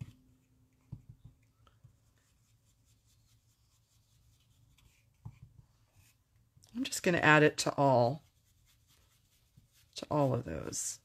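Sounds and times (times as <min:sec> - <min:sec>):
soft taps of brush on ink pad: 0:00.7 - 0:02.1, 0:04.8 - 0:06.7
brush sweeping over cardstock: 0:08.0 - 0:11.0.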